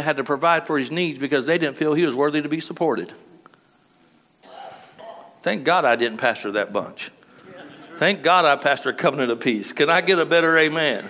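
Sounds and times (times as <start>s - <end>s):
man preaching: 0.0s - 3.2s, 5.4s - 11.0s.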